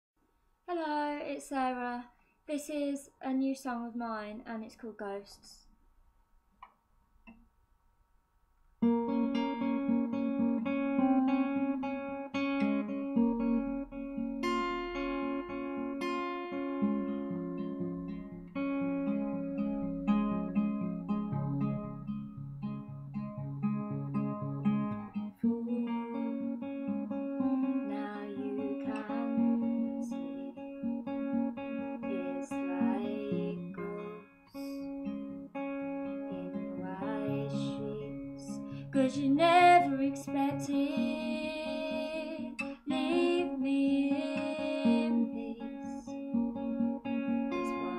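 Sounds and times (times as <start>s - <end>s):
acoustic guitar picking: 8.8s - 47.9s.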